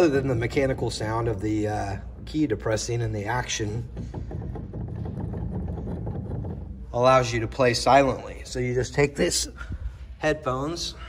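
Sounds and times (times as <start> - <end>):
piano keys knocking and clicking: 3.8 - 6.8.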